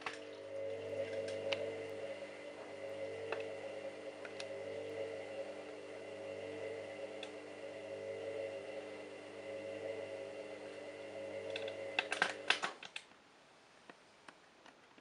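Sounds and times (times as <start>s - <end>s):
washing machine humming: 0.0s - 13.0s.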